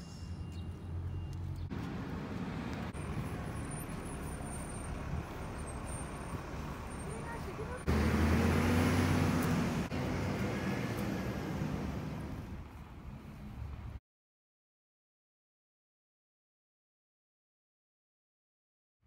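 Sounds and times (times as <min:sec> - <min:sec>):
vehicle engine rumbling: 0:00.0 - 0:14.0.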